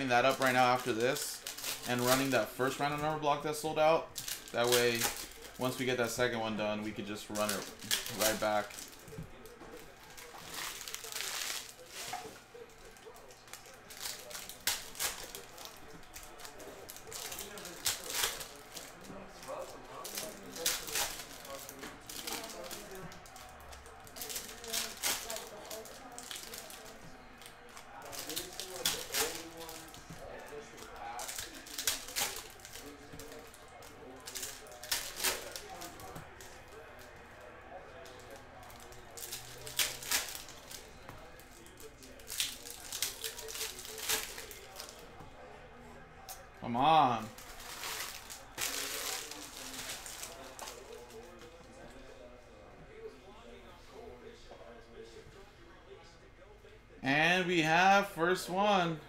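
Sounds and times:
cards being handled: 0:00.0 - 0:45.4, 0:46.4 - 0:51.6
foil wrappers crinkling and tearing: 0:00.0 - 0:45.5, 0:46.4 - 0:51.6.

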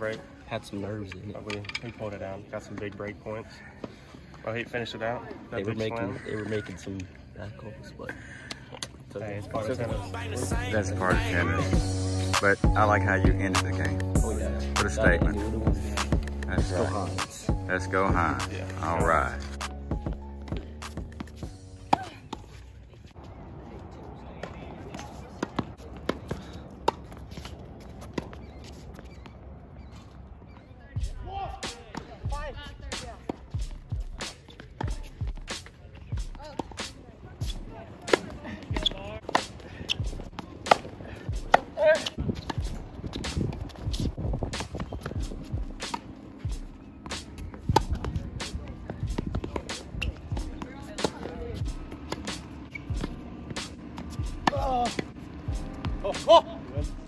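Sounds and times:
tennis balls struck by racquets: 0:09.6 - 0:22.6, 0:36.4 - 0:57.0
balls bouncing on hard court: 0:31.7 - 0:56.2.

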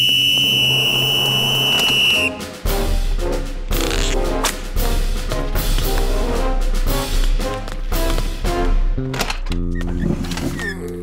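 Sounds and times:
shrill whistle blast: 0:00.0 - 0:02.5
brassy music with bass line: 0:00.3 - 0:10.4.

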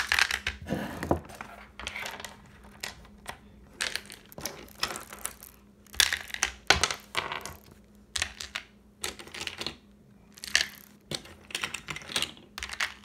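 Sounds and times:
pebbles and toy train cars clattering: 0:01.8 - 0:13.0.

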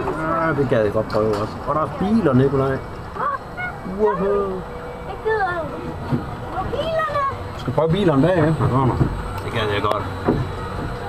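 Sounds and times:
voices calling out: 0:00.0 - 0:11.0.

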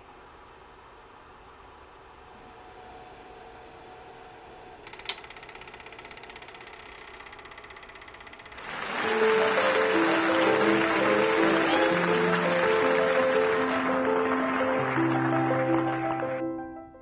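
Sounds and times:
faint motor hum: 0:00.0 - 0:10.2
film projector clatter: 0:04.8 - 0:10.0
loud music: 0:08.6 - 0:16.7.

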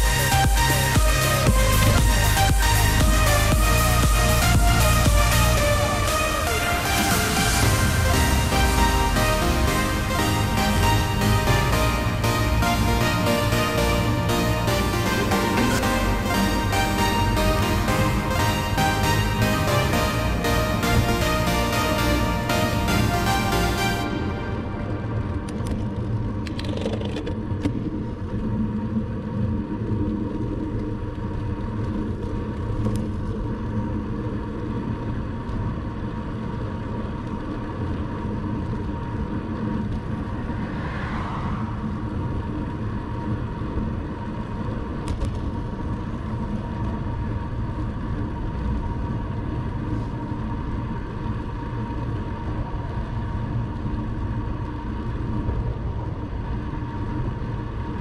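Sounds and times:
road rumble: 0:00.0 - 0:58.0
thin steady whine: 0:00.0 - 0:58.0
wind noise: 0:38.1 - 0:58.0.

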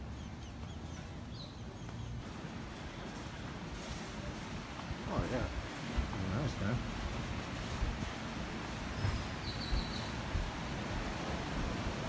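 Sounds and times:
ocean surf: 0:10.1 - 0:12.0.

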